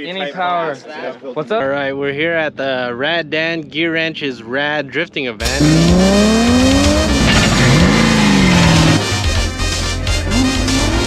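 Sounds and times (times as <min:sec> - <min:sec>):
car engine revving: 0:05.4 - 0:11.0.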